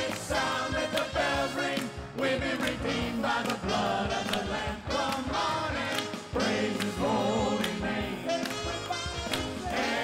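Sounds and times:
band playing steady beat: 0.0 - 10.0
gospel choir singing: 0.0 - 10.0.

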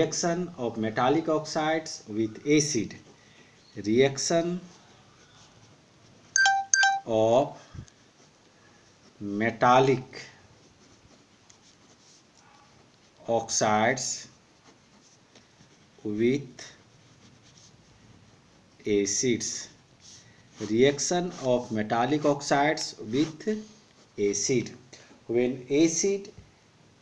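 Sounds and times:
pen scratching on paper: 1.2 - 6.3, 7.8 - 24.5
short electronic beeps: 6.4 - 7.1
person speaking: 6.4 - 7.6, 13.2 - 14.4, 16.0 - 17.3, 18.8 - 26.4.

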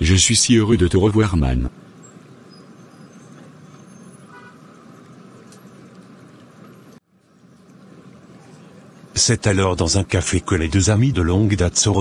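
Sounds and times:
traffic noise: 0.0 - 12.0
faint car horn toot: 3.8 - 4.8.

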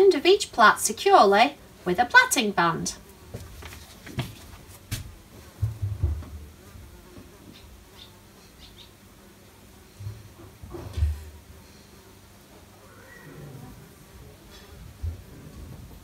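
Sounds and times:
low dull thumps: 5.5 - 6.6.

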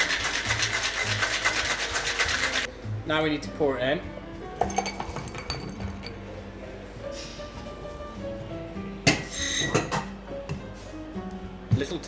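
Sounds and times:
ice clinking and rattling: 0.0 - 2.7
background music: 0.0 - 12.0.

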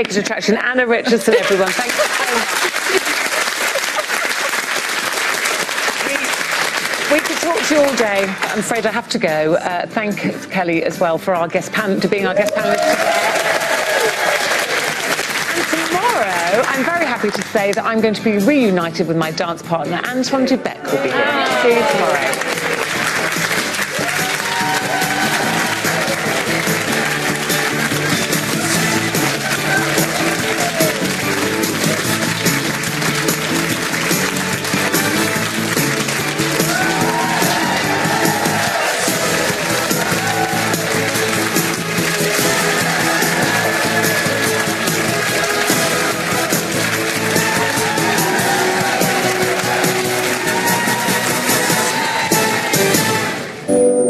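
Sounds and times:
television theme music: 0.0 - 54.0
audience applause: 1.1 - 8.9, 12.4 - 17.8, 20.9 - 53.6.

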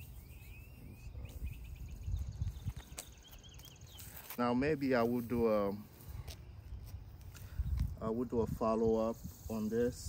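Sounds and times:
footsteps on concrete: 2.3 - 8.0.

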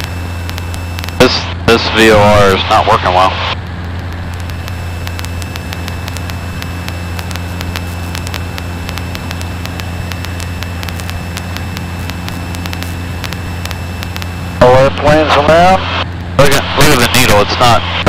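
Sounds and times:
plane engine and propeller droning: 0.0 - 18.0.

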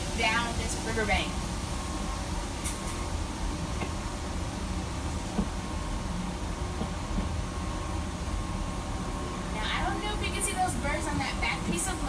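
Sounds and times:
faint steady whine: 0.0 - 12.0
monorail car rumble and hiss: 0.0 - 12.0.

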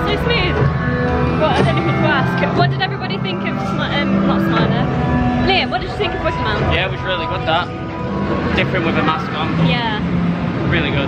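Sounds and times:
people talking: 0.0 - 0.6, 1.4 - 7.7, 8.6 - 10.0, 10.7 - 11.0
background music with held notes: 0.0 - 11.0.

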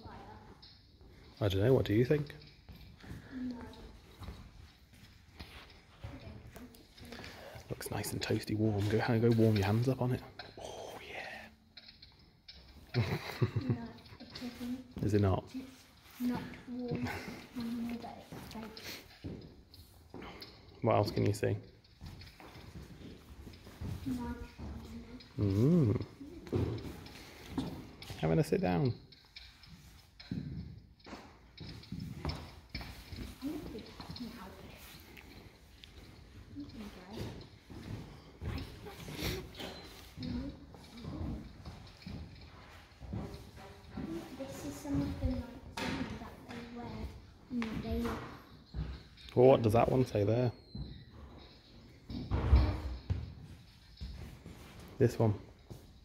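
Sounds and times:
person murmuring: 25.4 - 26.3
footsteps on wooden floor: 30.3 - 49.1.

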